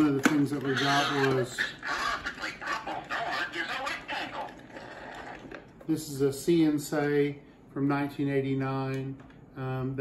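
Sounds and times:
talking toy voice tinny speaker: 0.0 - 5.4.

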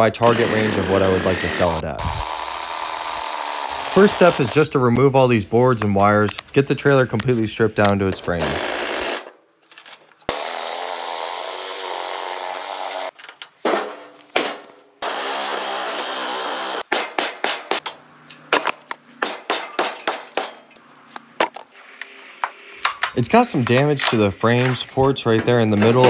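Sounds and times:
reciprocating saw cutting wood: 0.0 - 4.8, 10.3 - 13.1, 15.0 - 17.8.

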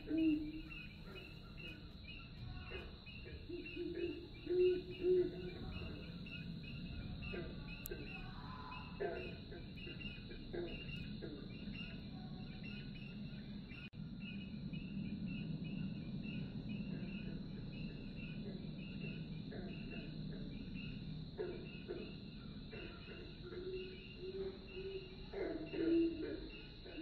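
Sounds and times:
high-pitched insect drone: 0.0 - 27.0
insect chirping: 0.0 - 27.0.

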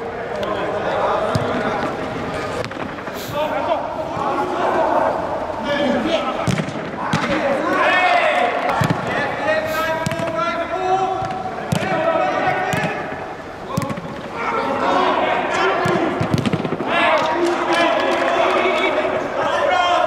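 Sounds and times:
footballers shouting: 0.0 - 20.0
football being kicked: 6.5 - 7.4, 10.0 - 10.3.

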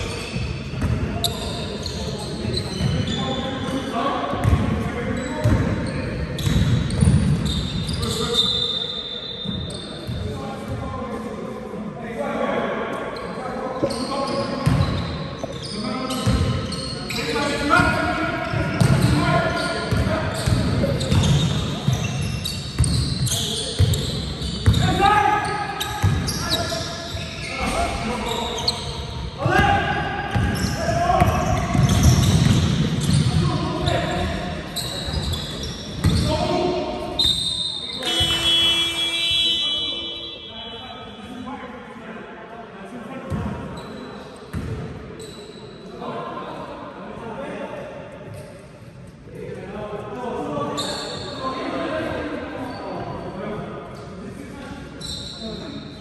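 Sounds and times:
basketball bouncing on hall floor: 0.3 - 1.4, 4.3 - 8.2, 14.6 - 16.8, 17.8 - 19.2, 19.8 - 25.1, 25.9 - 26.5, 29.4 - 34.5, 35.1 - 36.5, 38.0 - 39.0, 44.5 - 44.9
players calling out: 13.9 - 41.2.

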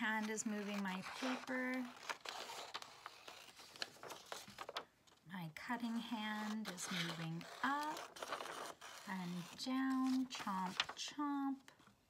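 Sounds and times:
paper rustling: 0.0 - 5.2, 6.1 - 11.1
scissors snipping paper: 6.4 - 10.4.

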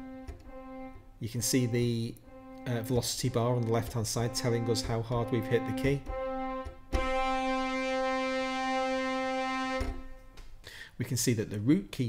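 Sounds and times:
sampled brass note: 0.0 - 10.5.

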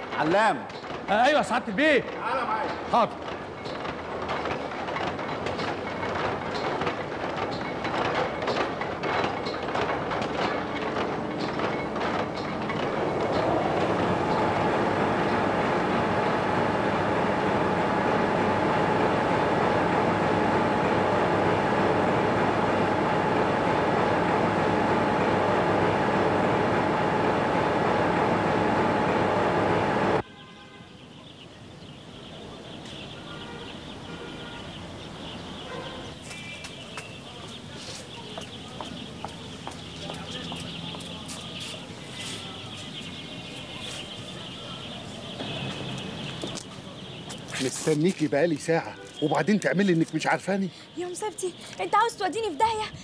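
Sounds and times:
winding frames clattering: 0.0 - 30.2
high even machine whine: 7.3 - 30.2.

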